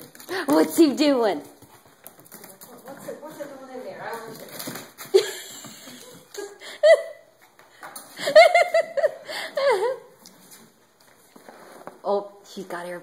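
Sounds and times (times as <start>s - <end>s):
dog paws on hardwood floor: 0.0s - 6.6s, 7.2s - 9.0s, 9.7s - 13.0s
woman laughing: 5.1s - 7.3s, 8.2s - 10.2s.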